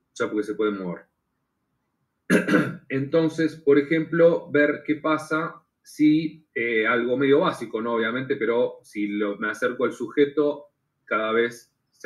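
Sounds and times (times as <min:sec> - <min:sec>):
man speaking: 0:00.1 - 0:01.1, 0:02.3 - 0:12.0
man clearing his throat: 0:02.3 - 0:02.9.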